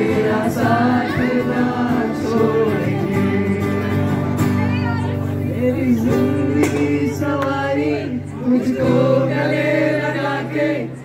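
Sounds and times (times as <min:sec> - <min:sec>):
voices singing a melody: 0:00.0 - 0:04.3, 0:05.4 - 0:11.0
acoustic guitar chords: 0:00.0 - 0:11.0.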